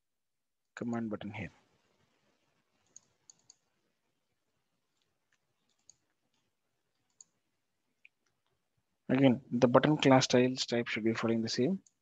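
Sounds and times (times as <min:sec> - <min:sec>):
mouse and keyboard clicks: 0:02.8 - 0:03.6.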